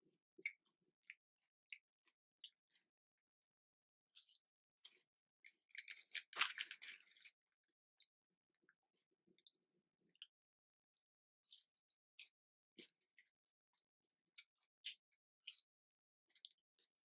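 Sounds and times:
paper packaging crinkling: 5.8 - 7.3.

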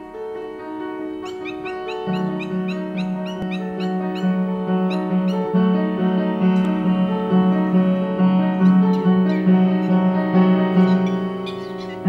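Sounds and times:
background music sustained tones: 0.0 - 12.0
birds yapping calls: 0.9 - 5.9, 7.5 - 12.0.

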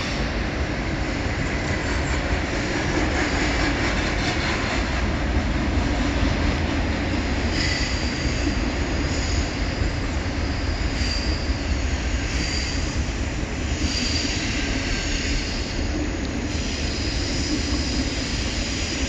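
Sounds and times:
train wheels rumbling on rail: 0.0 - 19.0
high wheel squeals: 7.5 - 13.1.

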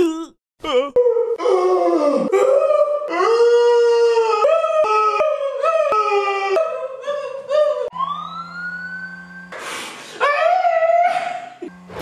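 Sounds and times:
man wailing howl: 0.0 - 7.9.

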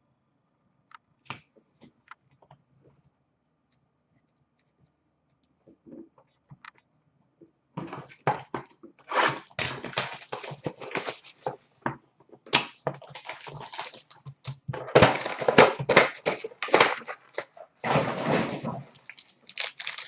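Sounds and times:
foil wrapper crinkling: 9.1 - 11.5, 13.0 - 14.2, 18.9 - 20.0.

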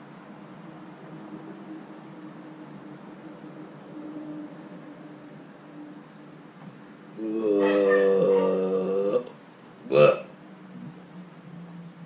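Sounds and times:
low room noise hiss: 0.0 - 12.0.

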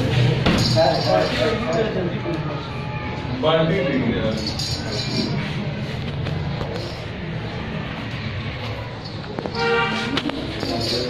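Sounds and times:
men talking: 0.1 - 5.6, 10.6 - 11.0.

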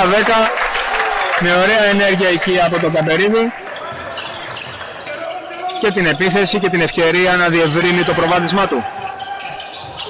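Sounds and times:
man commentating: 0.0 - 0.6, 1.3 - 3.6, 5.1 - 9.0.

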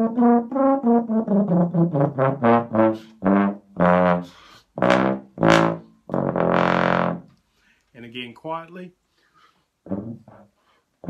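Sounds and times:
contrabass trombone notes: 0.0 - 7.4, 9.8 - 10.6.

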